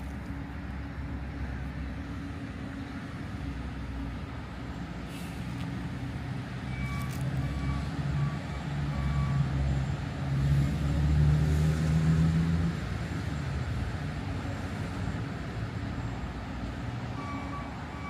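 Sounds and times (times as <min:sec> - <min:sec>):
vehicle engine humming: 0:00.0 - 0:18.0.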